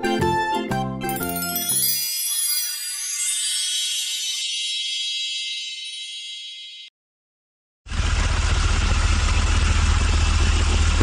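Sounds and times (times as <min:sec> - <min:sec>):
jingle low notes: 0:01.0 - 0:06.9
electronic sparkle shimmer: 0:01.1 - 0:06.9.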